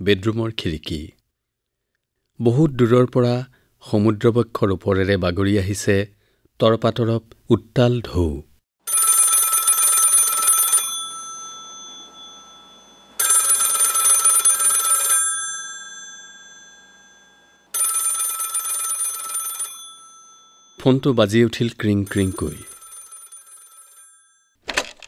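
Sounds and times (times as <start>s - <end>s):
telephone bell ringing: 8.9s - 20.9s, 22.0s - 24.6s.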